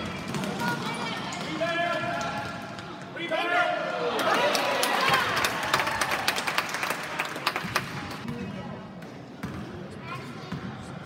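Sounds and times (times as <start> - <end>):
loud shout: 3.2 - 6.4
basketball bouncing: 9.4 - 9.7.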